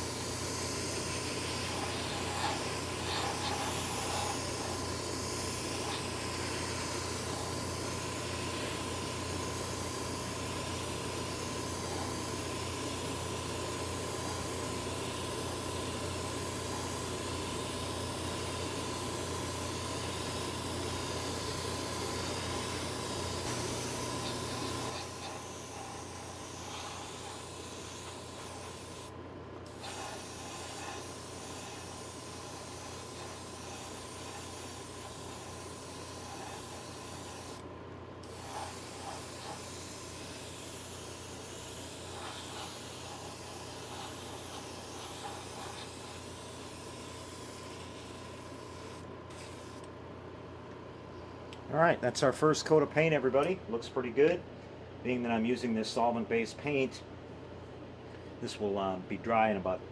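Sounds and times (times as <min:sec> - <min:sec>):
airbrush spraying hiss: 0:00.0 - 0:49.9
ventilation fan hum: 0:00.0 - 0:59.9.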